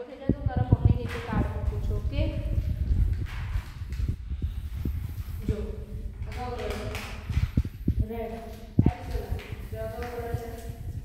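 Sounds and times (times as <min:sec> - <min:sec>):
person's voice: 0:00.0 - 0:02.7, 0:05.4 - 0:07.2, 0:07.8 - 0:11.0
low rumble of movement: 0:00.2 - 0:11.0.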